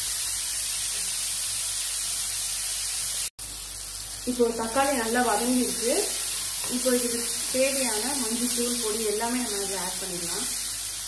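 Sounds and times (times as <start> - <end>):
vegetables sizzling in oil: 0.0 - 11.0
person talking: 4.3 - 10.6.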